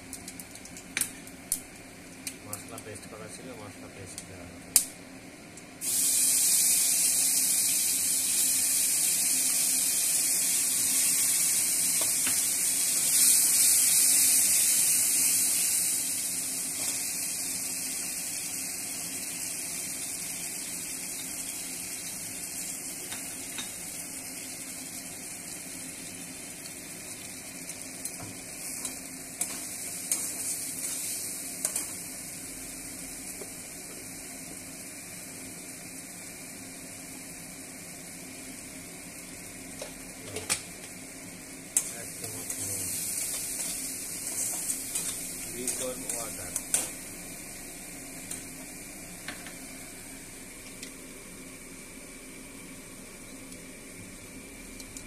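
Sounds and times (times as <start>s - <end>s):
paste sizzling in oil: 5.8s - 50.7s.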